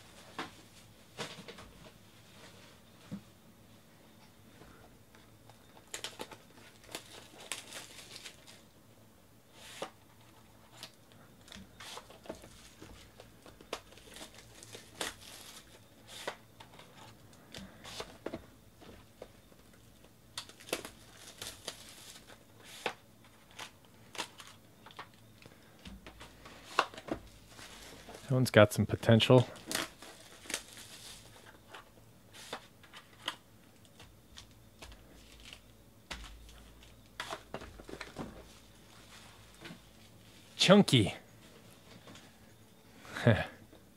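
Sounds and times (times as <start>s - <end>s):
plastic wrapping crinkling: 5.7s - 8.7s, 10.7s - 17.2s, 19.7s - 25.5s, 29.4s - 40.4s.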